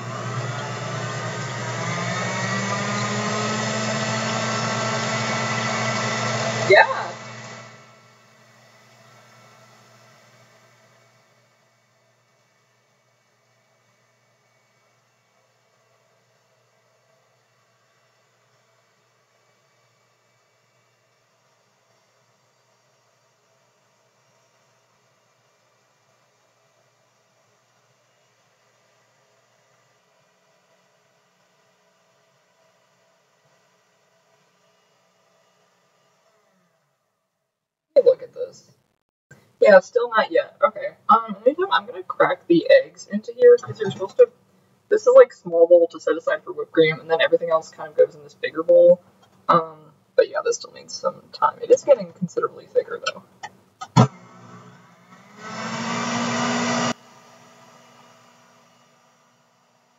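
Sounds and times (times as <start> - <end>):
electric mixer whipping cream: 0.0 - 10.8, 53.9 - 59.1.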